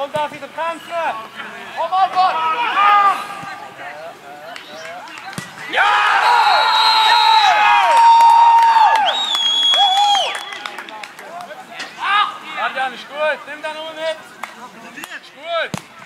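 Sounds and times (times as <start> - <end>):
footballers shouting: 0.0 - 10.9
men cheering: 5.6 - 10.7.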